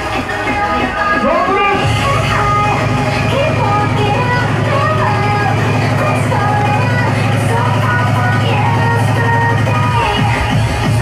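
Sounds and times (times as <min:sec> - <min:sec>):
hardcore dance music: 0:00.0 - 0:11.0
heavy bass: 0:00.0 - 0:11.0.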